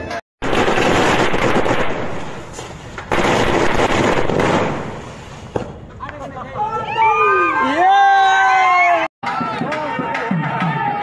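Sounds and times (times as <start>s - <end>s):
firecrackers crackling: 0.0s - 6.3s.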